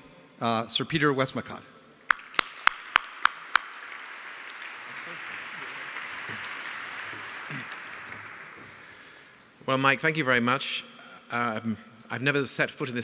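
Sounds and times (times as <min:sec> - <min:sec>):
audience applauding: 0:02.1 - 0:09.4
sharp claps near microphone: 0:02.1 - 0:09.4.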